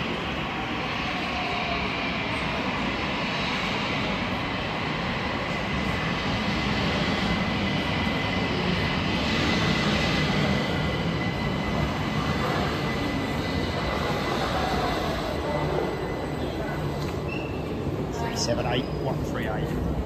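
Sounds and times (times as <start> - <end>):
train wheels rumbling: 0.0 - 20.0.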